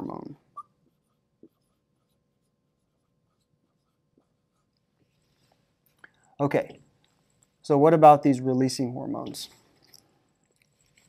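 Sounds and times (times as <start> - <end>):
marker writing on whiteboard: 0.8 - 5.2.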